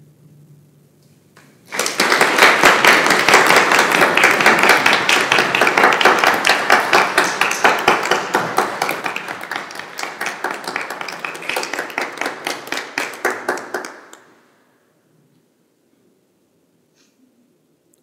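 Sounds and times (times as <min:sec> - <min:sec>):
audience applause: 0:01.7 - 0:14.4.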